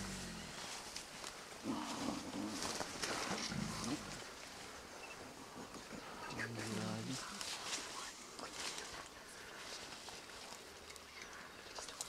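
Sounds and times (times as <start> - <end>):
leaves rustling: 0.0 - 4.8, 6.1 - 12.0.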